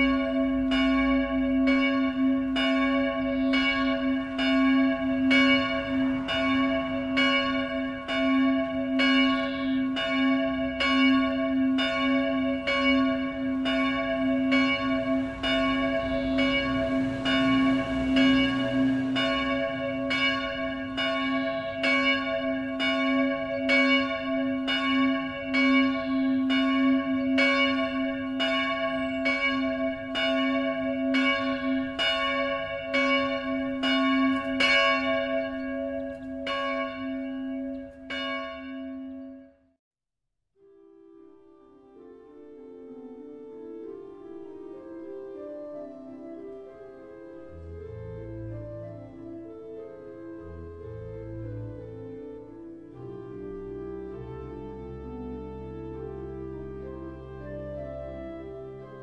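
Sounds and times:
church bell tolling: 0:00.0 - 0:39.6.

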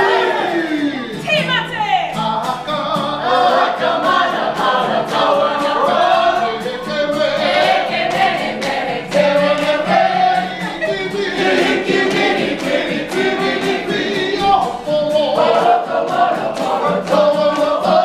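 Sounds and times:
group of people singing: 0:00.0 - 0:01.4, 0:02.1 - 0:18.0
hand claps: 0:07.4 - 0:18.0.

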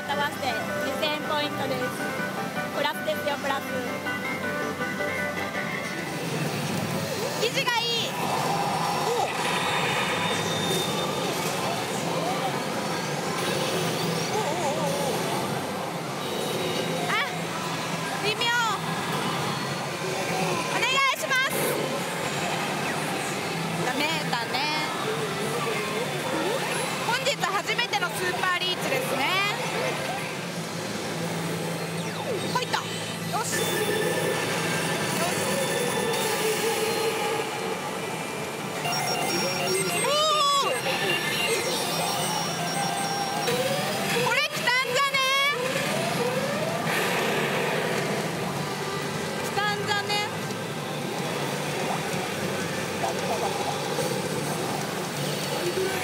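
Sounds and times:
pachinko parlour din: 0:00.0 - 0:56.0
pachinko machine voice and effects: 0:32.0 - 0:37.0, 0:38.8 - 0:46.7
sweeping electronic tones: 0:38.8 - 0:44.4.

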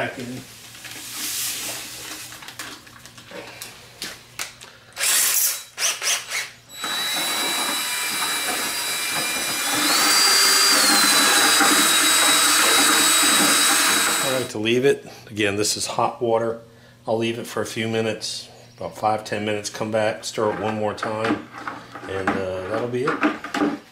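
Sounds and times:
packet rustling: 0:00.6 - 0:03.8
cordless drill whining: 0:05.0 - 0:14.5.

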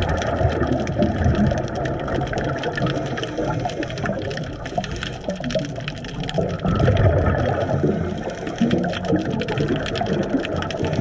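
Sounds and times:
crackle of fine clicks: 0:00.0 - 0:11.0
underwater air bubbles rushing: 0:00.0 - 0:11.0
water washing: 0:00.0 - 0:11.0.

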